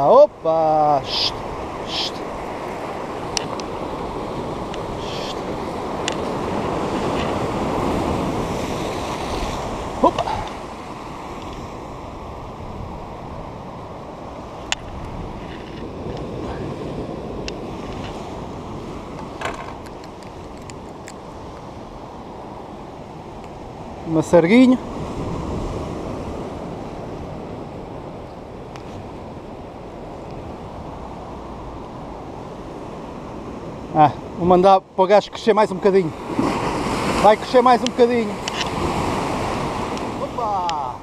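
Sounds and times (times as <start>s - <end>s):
sea surf on rocky shore: 0.0s - 41.0s
wind buffeting microphone: 1.3s - 24.2s, 24.8s - 34.4s.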